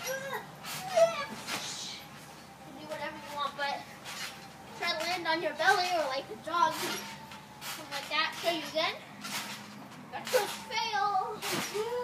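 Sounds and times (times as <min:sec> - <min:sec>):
trampoline swish: 0:00.0 - 0:02.3, 0:02.9 - 0:12.0.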